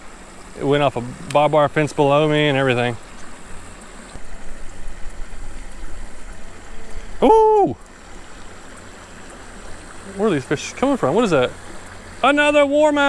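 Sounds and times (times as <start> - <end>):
creek water running: 0.0 - 13.0
hooting tone: 7.2 - 7.8.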